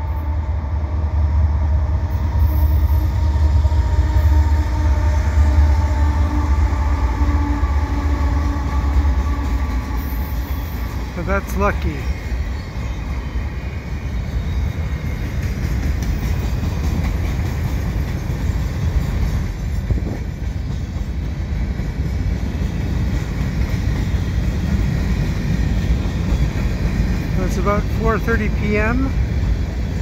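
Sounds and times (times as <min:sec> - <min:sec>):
freight train wheels rumbling on rail: 0:00.0 - 0:30.0.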